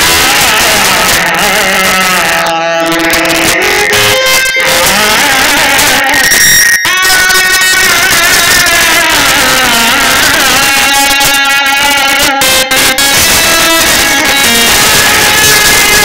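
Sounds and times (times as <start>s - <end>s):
live folk music: 0.0s - 16.0s.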